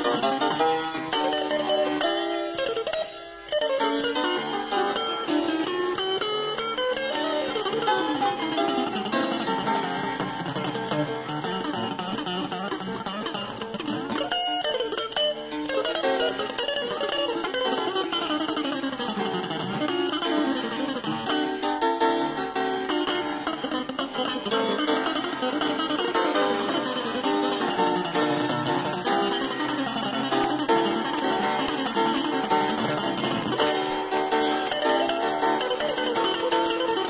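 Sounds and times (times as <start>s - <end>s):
jazz guitar and piano playing: 0.0s - 37.0s.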